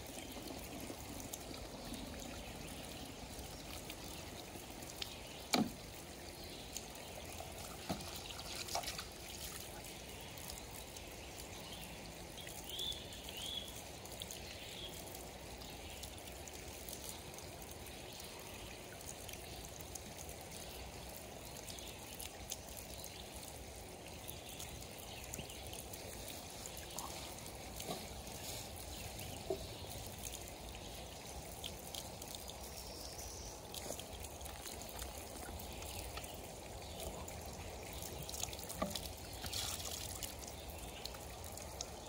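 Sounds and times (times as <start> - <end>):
water filling plastic bottles: 0.0 - 42.0
water pouring from pipe spouts: 0.0 - 42.0.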